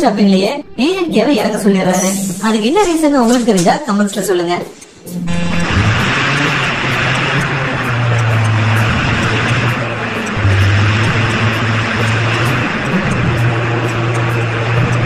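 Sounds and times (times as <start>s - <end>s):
stopwatch ticking: 2.3s - 15.0s
road noise: 4.6s - 15.0s
bus engine drone: 4.7s - 15.0s.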